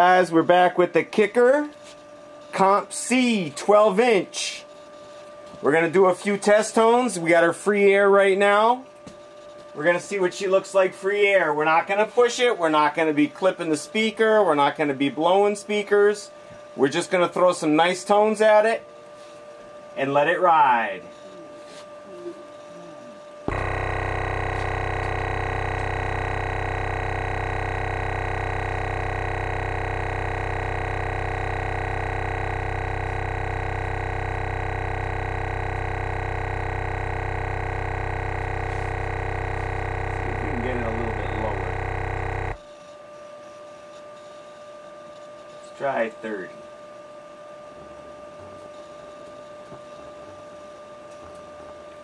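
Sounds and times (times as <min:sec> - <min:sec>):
subwoofer playing low test tone: 0:23.5 - 0:42.6.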